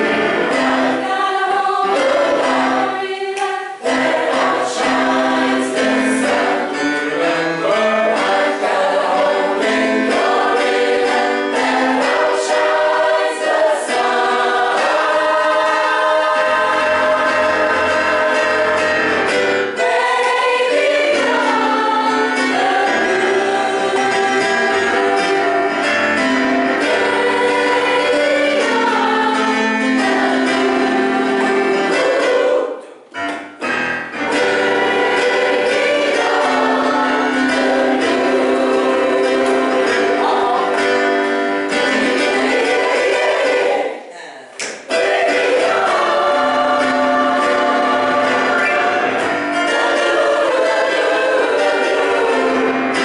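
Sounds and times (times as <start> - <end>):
gospel choir singing: 0.0 - 53.0.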